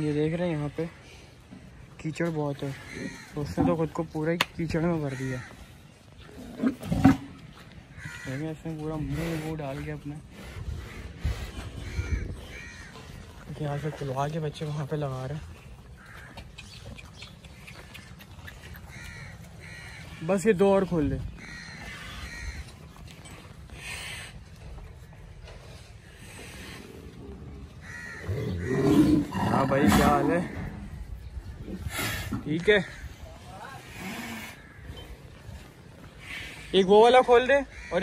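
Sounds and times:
cattle lowing: 0:05.0 - 0:14.4
harsh bird calls: 0:15.9 - 0:22.8, 0:26.0 - 0:33.4, 0:34.2 - 0:38.0.

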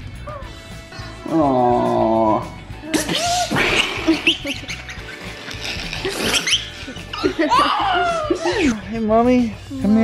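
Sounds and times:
background music: 0:00.0 - 0:10.0
toddler laughing: 0:04.0 - 0:08.8.

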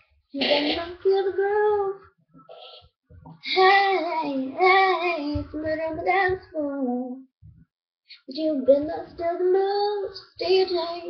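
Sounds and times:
girl singing pop song: 0:00.4 - 0:02.0, 0:03.3 - 0:07.3, 0:08.1 - 0:11.0.

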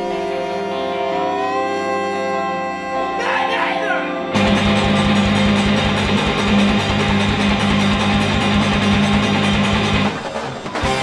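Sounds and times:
instrumental rock band music: 0:04.0 - 0:11.0.

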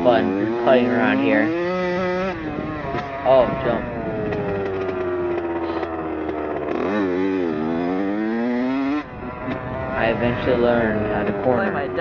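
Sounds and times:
dirt bike engine revving: 0:00.0 - 0:12.0.

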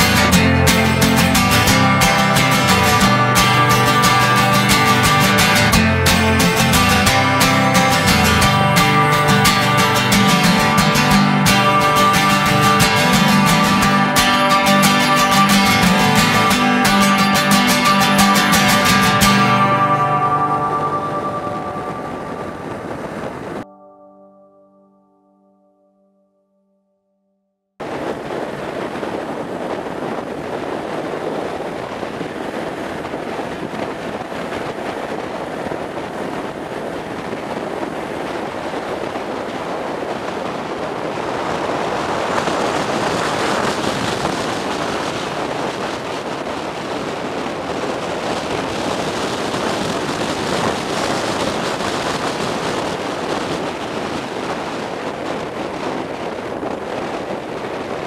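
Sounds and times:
motorcycle running: 0:00.0 - 0:23.6
wind rushing over microphone: 0:00.0 - 0:23.7, 0:27.8 - 0:58.0.

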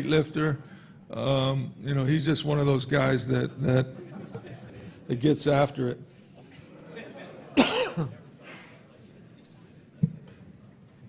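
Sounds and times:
man coughing: 0:07.6 - 0:08.8.

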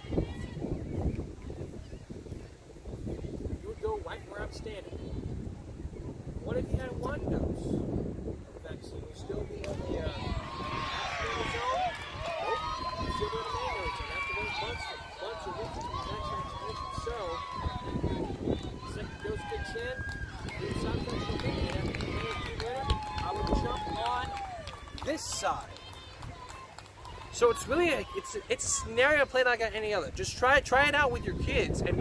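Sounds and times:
outdoor background noise: 0:00.0 - 0:32.0.

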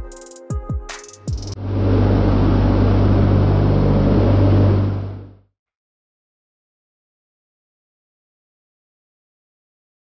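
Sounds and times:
background music with kick drum: 0:00.0 - 0:01.6
aircraft propeller engines droning: 0:01.4 - 0:05.4.

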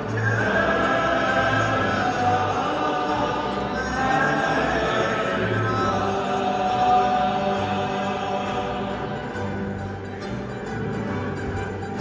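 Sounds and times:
men's choir singing: 0:00.0 - 0:10.4
acoustic guitar: 0:00.0 - 0:12.0
low bass line: 0:00.0 - 0:12.0.

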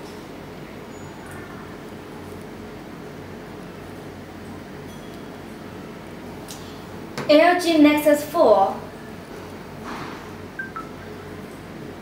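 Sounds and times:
two-note electronic beep: 0:10.6 - 0:11.2.

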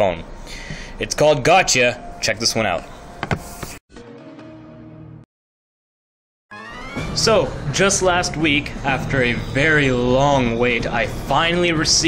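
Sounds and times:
music with low held tones: 0:06.5 - 0:12.0.

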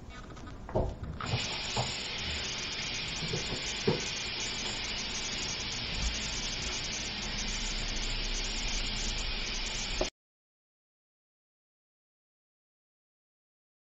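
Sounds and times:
faucet running: 0:01.2 - 0:10.1.

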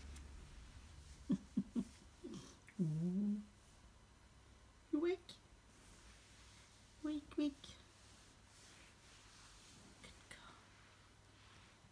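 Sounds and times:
faint whisper: 0:09.6 - 0:11.9.

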